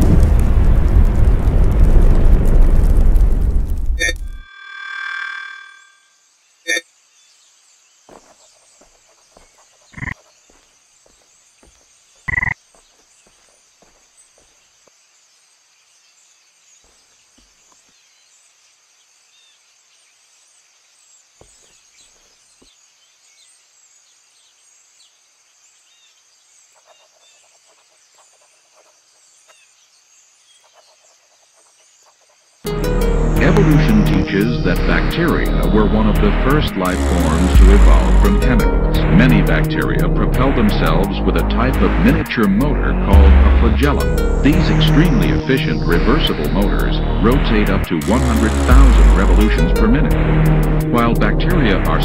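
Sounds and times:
high-pitched insect drone: 4.0 - 6.8
ringing tone: 4.0 - 6.8
music: 32.7 - 52.0.

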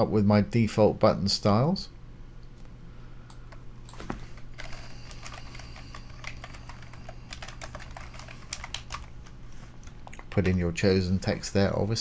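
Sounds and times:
typing on computer keyboard: 4.6 - 9.1.

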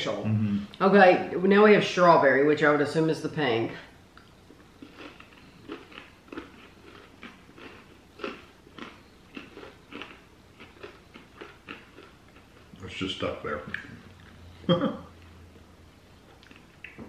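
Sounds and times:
chewing crunchy pretzels: 4.5 - 14.4.

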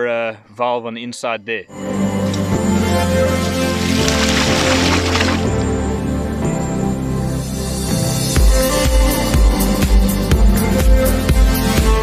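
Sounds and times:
background music: 1.7 - 12.0
water gushing from pipe: 3.4 - 5.9.

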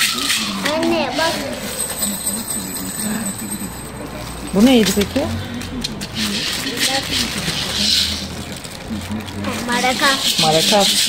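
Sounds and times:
maracas rattling in plastic bag: 0.0 - 11.0
murmuring voices: 0.0 - 11.0.

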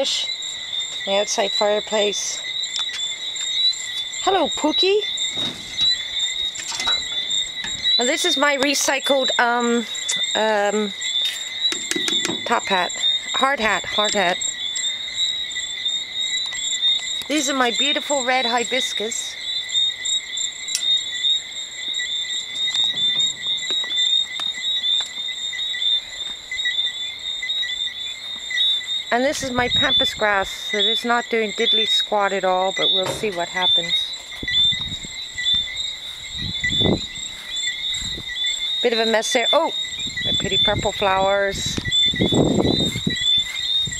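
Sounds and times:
insects chirping: 0.0 - 43.9.

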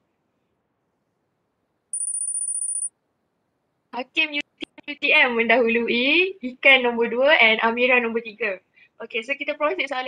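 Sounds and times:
electronic ringing tone with flutter: 2.0 - 2.9.

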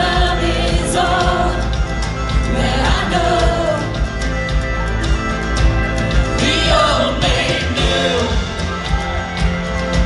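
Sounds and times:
worship band playing: 0.0 - 10.0.

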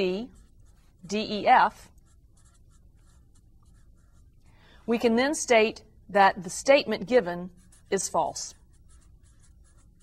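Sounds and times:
person speaking: 0.0 - 4.2, 4.9 - 9.9
marker writing on paper: 0.0 - 4.4, 7.1 - 10.0.

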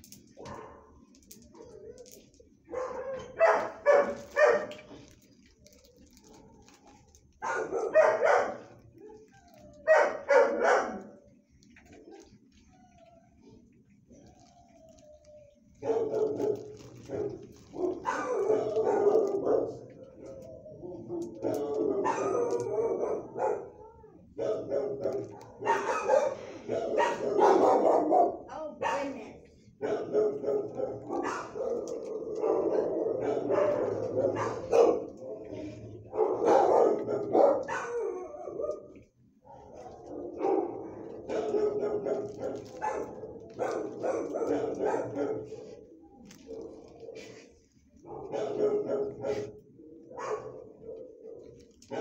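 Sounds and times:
dogs barking: 0.3 - 1.0, 2.7 - 5.1, 7.4 - 8.9, 9.5 - 11.2, 15.8 - 52.0.

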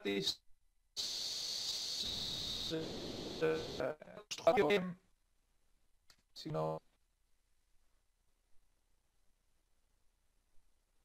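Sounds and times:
static hiss with whistling: 1.0 - 4.0.

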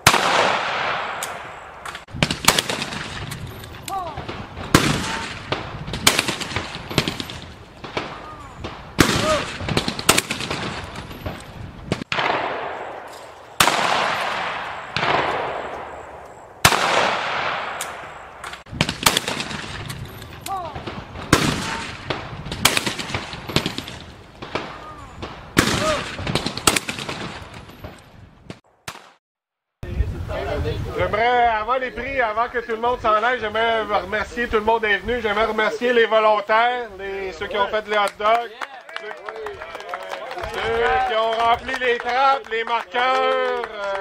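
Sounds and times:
echoing shotgun shots: 0.0 - 29.2.

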